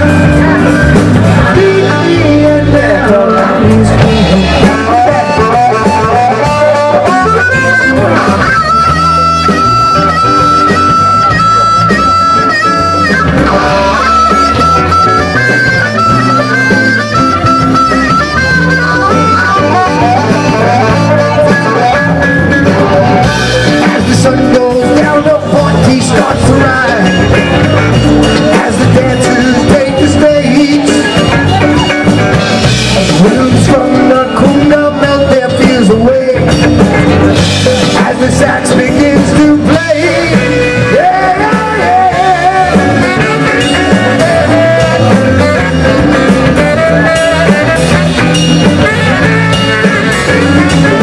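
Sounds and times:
instrumental rock music: 0.0 - 51.0.

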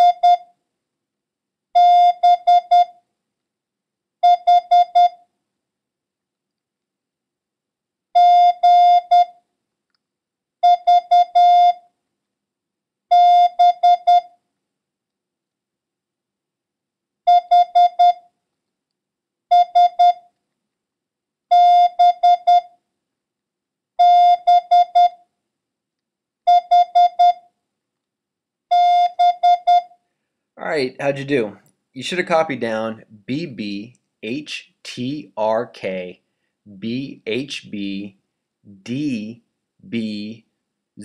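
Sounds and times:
morse code beeps: 0.0 - 0.5, 1.8 - 2.9, 4.2 - 5.2, 8.2 - 9.3, 10.6 - 11.8, 13.1 - 14.3, 17.3 - 18.2, 19.5 - 20.2, 21.5 - 22.7, 24.0 - 25.2, 26.5 - 27.4, 28.7 - 30.0.

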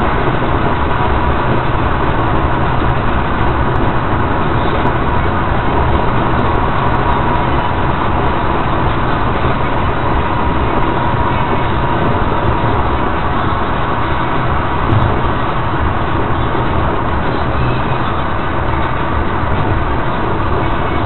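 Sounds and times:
car tyre and engine noise: 0.0 - 21.0.

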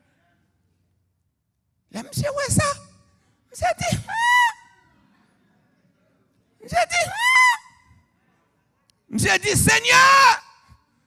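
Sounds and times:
man shouting into a microphone: 1.9 - 3.0, 3.6 - 4.7, 6.6 - 7.8, 9.1 - 10.8.

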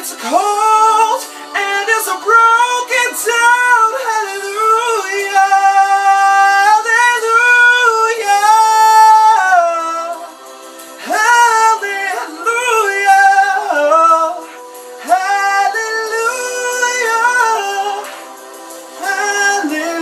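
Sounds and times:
man singing unaccompanied: 0.0 - 18.3, 19.0 - 20.0.

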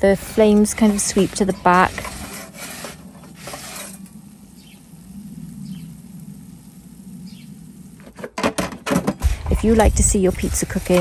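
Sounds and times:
metal peel scraping stone: 0.4 - 4.2.

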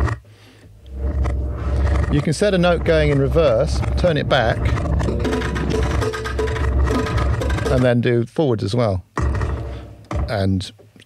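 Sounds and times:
reversed bass kick drum loop: 0.9 - 8.0.

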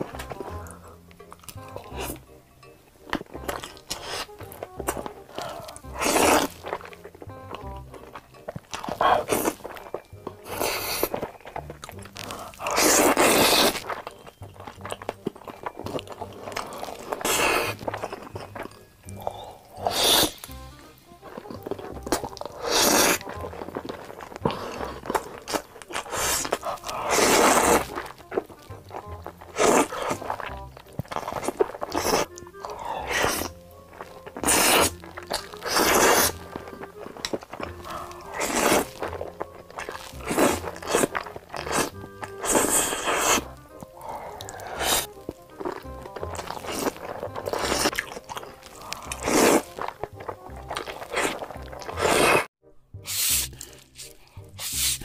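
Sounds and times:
noodles slurped and chewed: 0.0 - 2.4, 3.0 - 55.0
background music: 0.0 - 55.0
crunching bites: 3.0 - 52.5.

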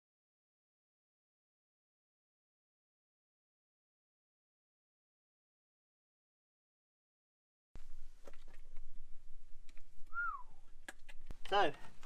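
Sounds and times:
short whistle-like note: 10.1 - 10.6.

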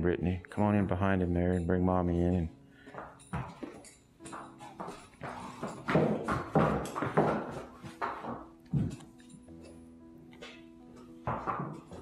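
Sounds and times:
hooves on concrete floor: 2.2 - 12.0.

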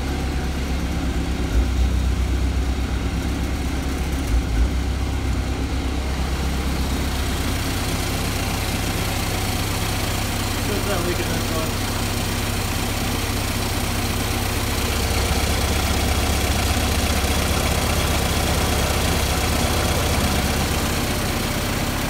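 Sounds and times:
car engine idling: 0.0 - 22.0.

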